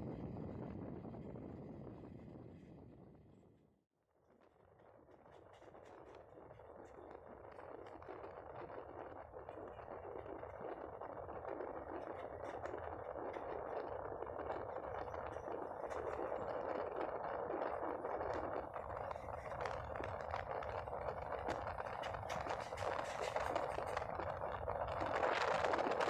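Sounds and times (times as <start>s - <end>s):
train wheels on track: 9.2s - 26.0s.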